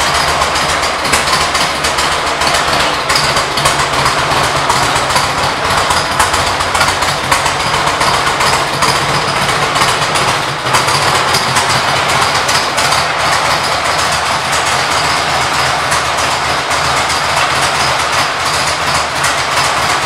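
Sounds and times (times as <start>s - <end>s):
motorcycle engine idling: 0.0s - 20.0s.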